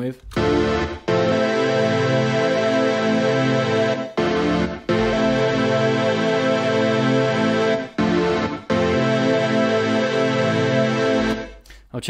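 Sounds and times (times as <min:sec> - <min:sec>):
sustained synth pad chord: 0:00.3 - 0:11.6.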